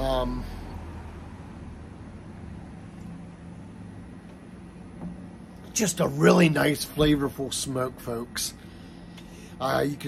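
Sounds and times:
faint outdoor noise: 0.0s - 10.0s
low hum: 0.0s - 10.0s.

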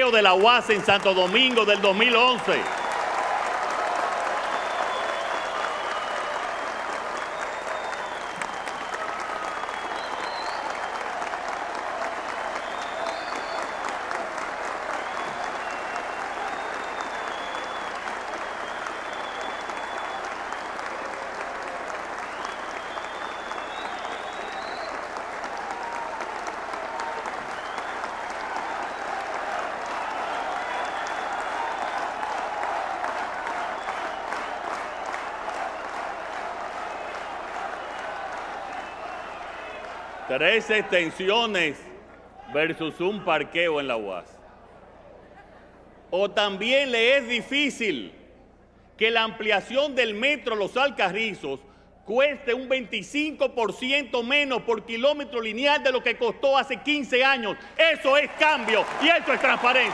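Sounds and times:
large audience applauding: 0.0s - 41.8s, 53.0s - 59.9s.

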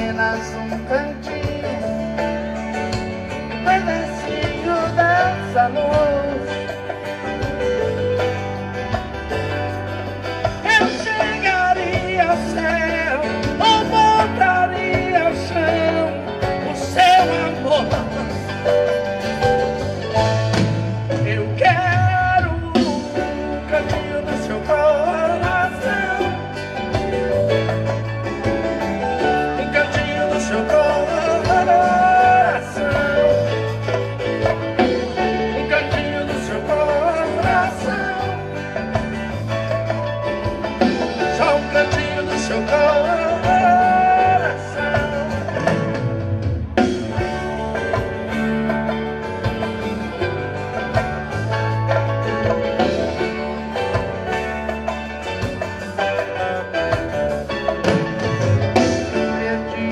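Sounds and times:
man singing: 0.0s - 9.0s, 9.6s - 48.0s, 55.9s - 59.9s
bass guitar: 0.0s - 59.9s
electric guitars: 0.0s - 59.9s
live band music: 0.0s - 59.9s.

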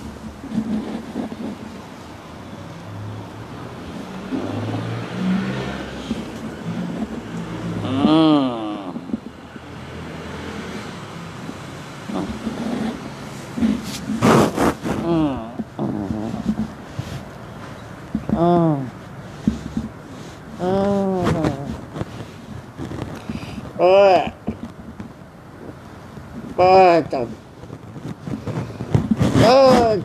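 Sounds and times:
low uneven hum: 0.0s - 9.7s
person's wordless voice: 6.1s - 9.3s, 12.1s - 13.8s, 14.9s - 16.8s, 18.2s - 19.0s, 20.6s - 21.9s, 23.3s - 24.6s, 26.4s - 27.4s, 29.3s - 30.0s.

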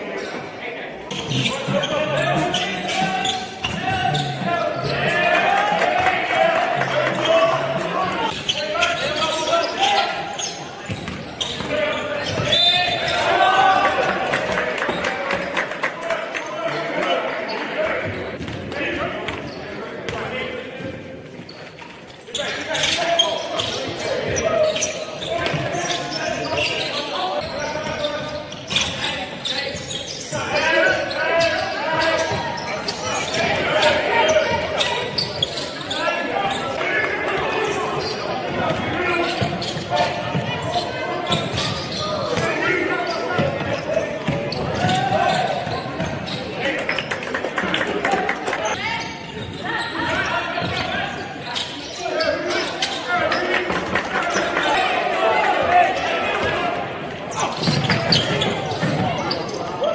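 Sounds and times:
players calling out: 0.1s - 15.6s, 22.3s - 59.9s.

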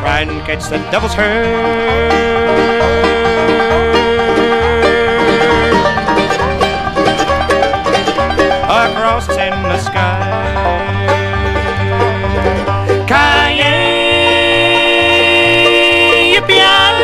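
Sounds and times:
banjo picking fast runs: 0.0s - 17.0s
bass stepping between notes: 0.0s - 17.0s.

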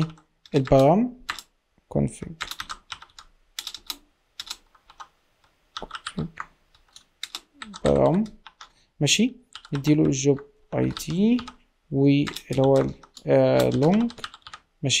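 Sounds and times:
computer keyboard typing: 0.0s - 1.5s, 2.4s - 5.1s, 5.7s - 8.8s, 9.5s - 11.6s, 12.2s - 14.7s.

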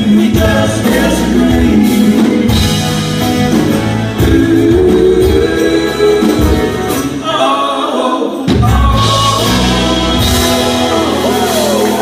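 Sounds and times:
acoustic guitar: 0.0s - 12.0s
people singing: 0.0s - 12.0s.

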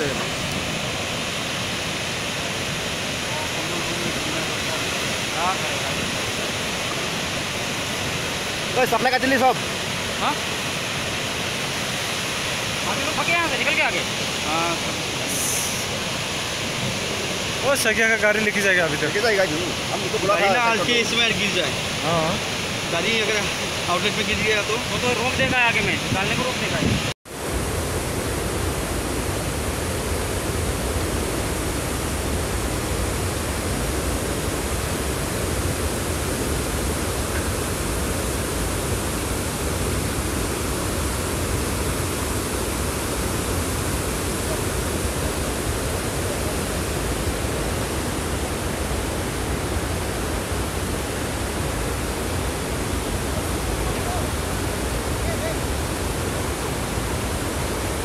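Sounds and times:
floodwater rushing down hillside: 0.0s - 58.0s.

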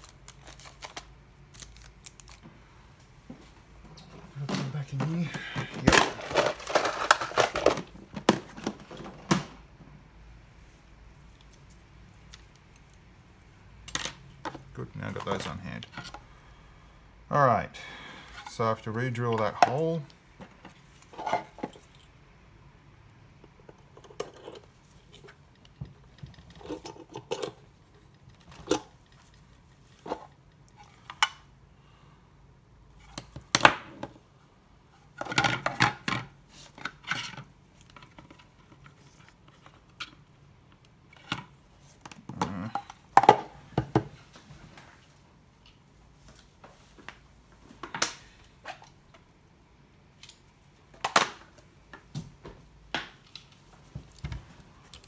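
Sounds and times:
plastic parts clicking and rattling: 4.4s - 9.5s.

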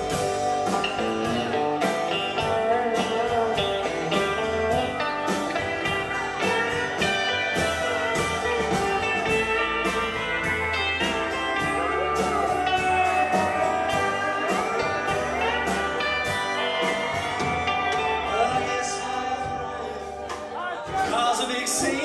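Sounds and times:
pedal steel guitar: 0.0s - 20.6s
country band playing: 0.0s - 22.0s.

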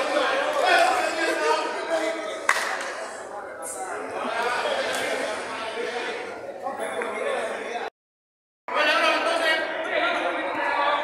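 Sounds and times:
men shouting and talking: 0.0s - 7.9s, 8.7s - 11.0s.

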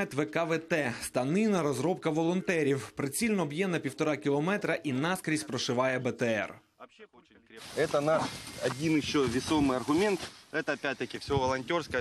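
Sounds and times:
man talking: 0.0s - 12.0s
steady hiss: 7.6s - 11.8s.

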